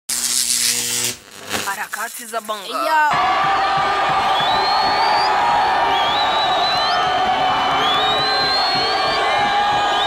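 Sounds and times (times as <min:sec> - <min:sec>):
electronic buzzing hiss: 0:00.1 - 0:02.7.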